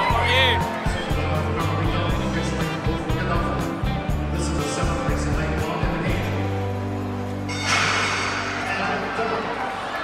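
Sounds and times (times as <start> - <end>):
music with steady beat and bass: 0.0 - 7.7.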